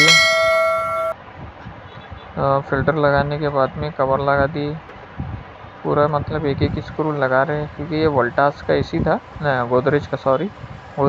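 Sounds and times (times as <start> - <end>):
bell-like ding: 0.0 - 1.2.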